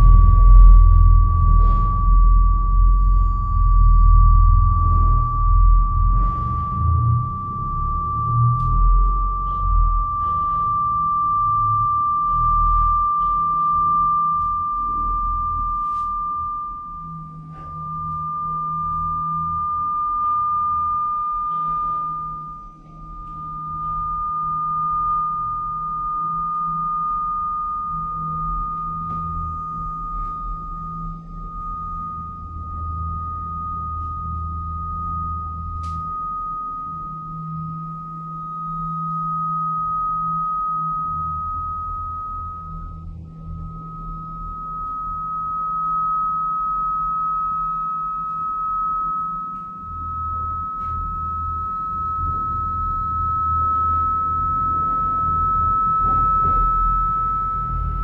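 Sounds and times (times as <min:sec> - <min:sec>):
low wavering drone: 0:00.0 - 0:58.0
sustained pure tone: 0:00.0 - 0:58.0.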